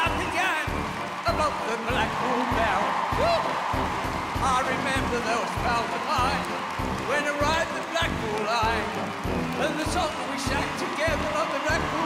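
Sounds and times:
audience clapping along: 0.0 - 12.0
upbeat electronic keyboard music: 0.0 - 12.0.

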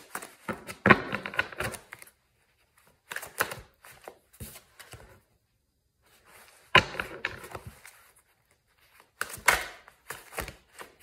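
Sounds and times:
cards being shuffled: 0.0 - 5.1, 6.3 - 11.0.

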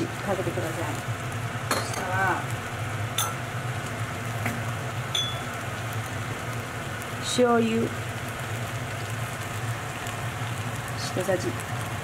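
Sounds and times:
food simmering in a wok: 0.0 - 12.0.

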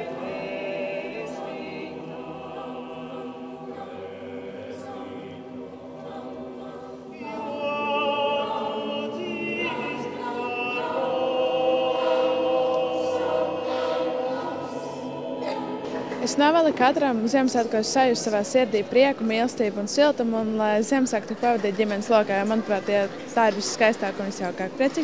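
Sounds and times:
choir singing slowly: 0.0 - 20.2.

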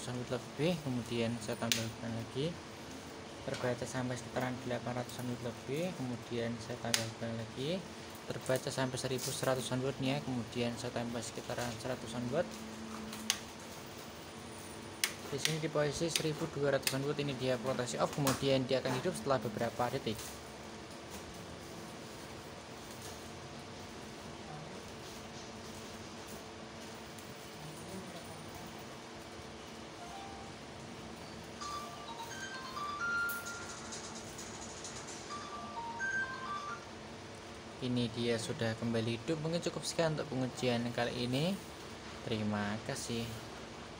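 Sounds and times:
cooling fan hum: 0.0 - 43.9
electronic beeping tune: 31.6 - 34.2, 35.3 - 36.9.

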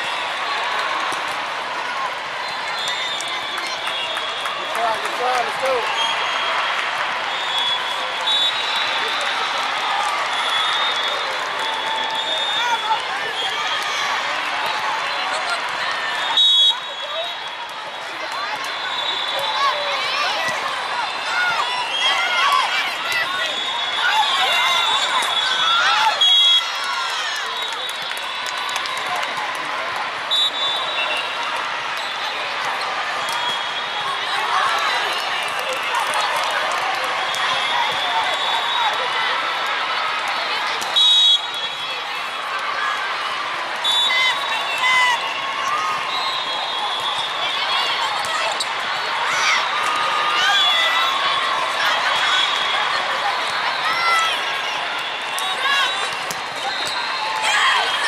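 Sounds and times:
voices chattering and calling out: 0.0 - 58.0.

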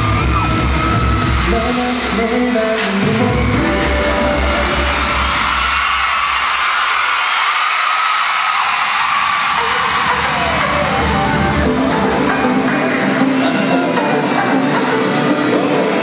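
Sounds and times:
live pop music with bass beat: 0.0 - 6.9, 9.0 - 16.0
crowd cheering and screaming: 0.0 - 16.0.

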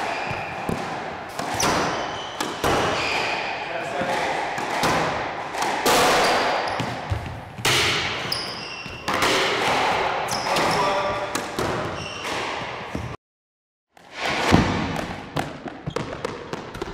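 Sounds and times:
shoes squeaking on court floor: 0.0 - 4.4, 6.2 - 13.2, 15.4 - 16.9
squash ball hits ringing: 0.0 - 12.5.

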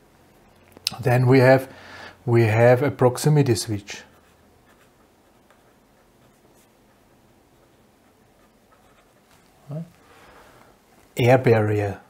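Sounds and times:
pencil writing on paper: 8.0 - 9.3.

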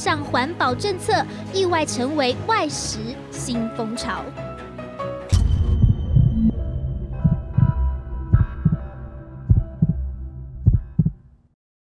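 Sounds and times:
heartbeat thumps: 5.5 - 6.6, 7.2 - 11.2.

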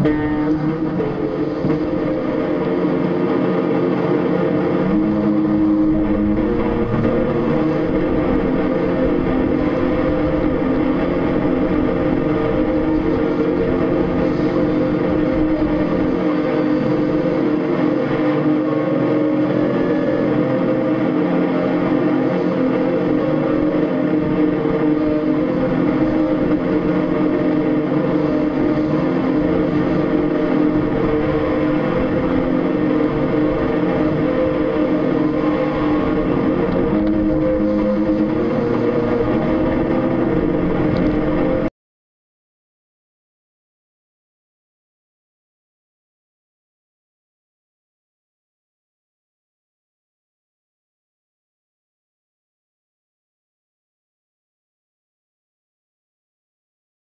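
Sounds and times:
droning hum of low tones: 0.0 - 41.7.

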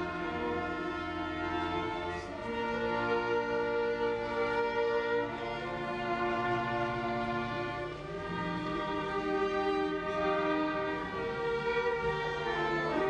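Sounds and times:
string ensemble slow chords: 0.0 - 13.0.

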